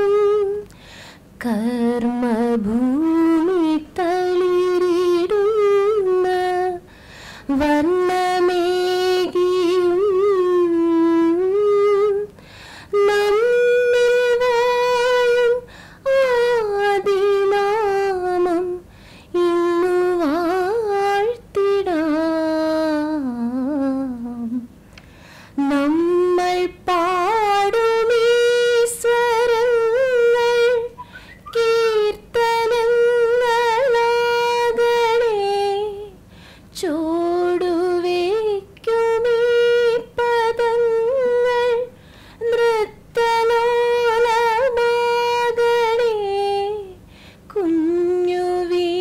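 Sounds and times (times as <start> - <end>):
woman singing unaccompanied: 0.0 - 0.8, 1.4 - 24.7, 25.6 - 49.0
woman breathing: 0.7 - 1.3, 6.9 - 7.5, 12.4 - 12.9, 15.7 - 16.0, 18.9 - 19.3, 24.8 - 25.6, 31.0 - 31.5, 36.3 - 36.7, 42.0 - 42.4, 47.0 - 47.5.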